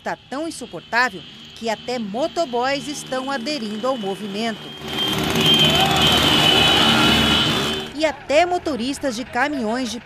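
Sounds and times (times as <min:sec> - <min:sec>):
steady high-pitched tone: 0:00.0 - 0:08.0
motorcycle engines revving: 0:00.2 - 0:10.0.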